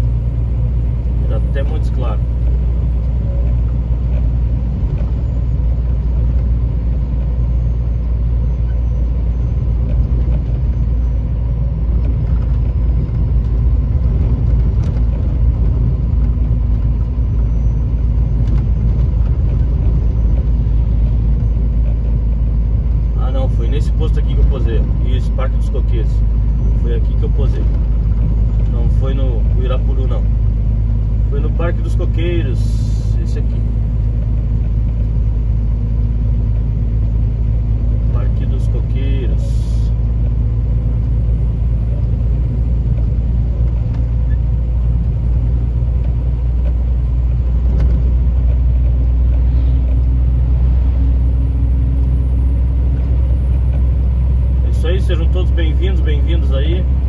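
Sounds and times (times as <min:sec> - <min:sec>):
diesel engine droning: 0:00.0 - 0:57.0
road noise: 0:00.0 - 0:57.0.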